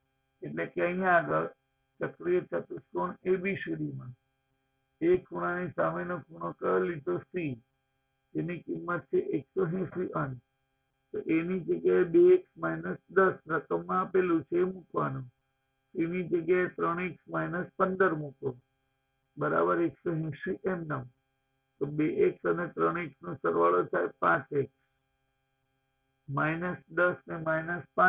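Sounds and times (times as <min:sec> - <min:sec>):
faint electrical hum: 0:00.0 - 0:28.0
man speaking: 0:00.4 - 0:04.1, 0:05.0 - 0:07.6, 0:08.4 - 0:10.4, 0:11.2 - 0:15.3, 0:16.0 - 0:18.6, 0:19.4 - 0:21.1, 0:21.8 - 0:24.7, 0:26.3 - 0:28.0.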